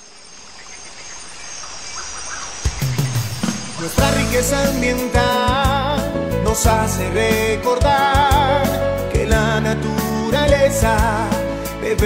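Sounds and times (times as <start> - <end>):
birds chirping: 0.0 - 6.0.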